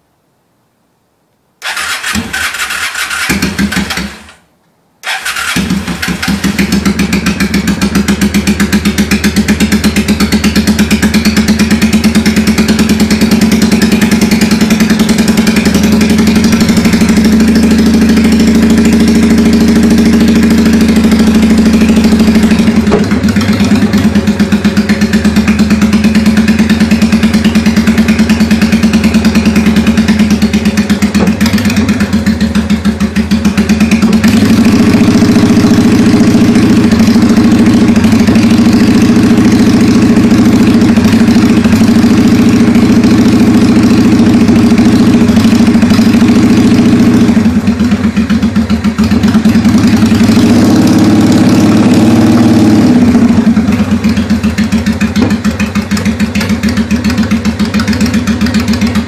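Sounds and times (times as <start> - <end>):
motorcycle engine idling: 1.7 - 4.4, 5.0 - 59.0.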